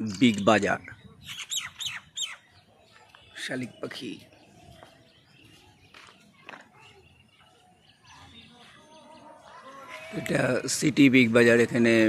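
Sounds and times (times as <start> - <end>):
bird calling: 0.2 - 10.7.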